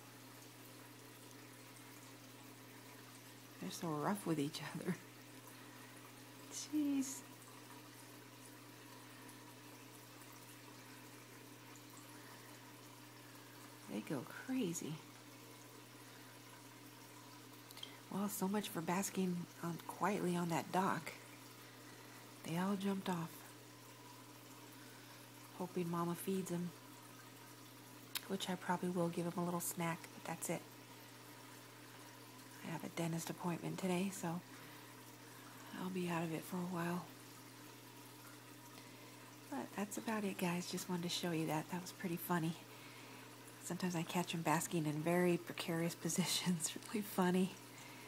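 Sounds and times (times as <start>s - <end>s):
tank filter hum and water: 0.0s - 48.0s.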